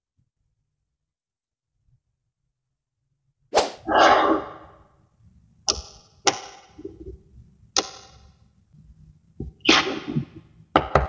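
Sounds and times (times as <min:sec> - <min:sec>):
magnet balls clicking together: 0:05.7 - 0:06.9, 0:07.8 - 0:08.3.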